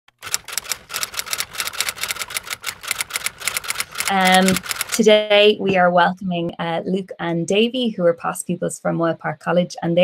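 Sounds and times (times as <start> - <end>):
rapid keyboard typing: 0.1 - 5.3.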